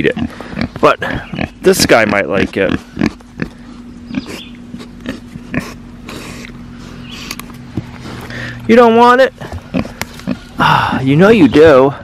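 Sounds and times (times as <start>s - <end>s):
steady low hum: 0.0s - 12.0s
pig sniffing and snuffling: 0.1s - 8.7s, 9.3s - 10.6s.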